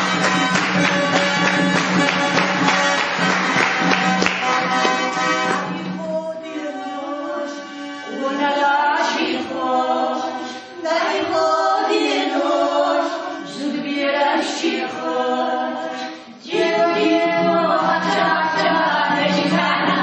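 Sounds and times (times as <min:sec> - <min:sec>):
vocal ensemble singing unaccompanied: 0:05.4 - 0:20.0.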